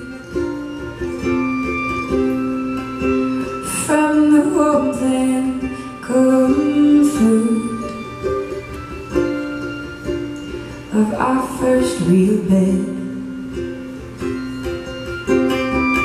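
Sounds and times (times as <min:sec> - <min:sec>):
acoustic guitar: 0:00.0 - 0:16.0
fiddle: 0:00.0 - 0:16.0
mandolin: 0:00.0 - 0:16.0
ukulele: 0:00.0 - 0:16.0.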